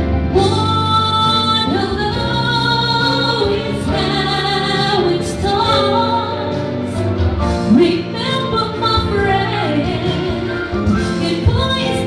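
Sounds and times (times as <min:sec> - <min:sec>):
keyboard accompaniment: 0:00.0 - 0:12.0
woman singing slow song: 0:00.4 - 0:06.8.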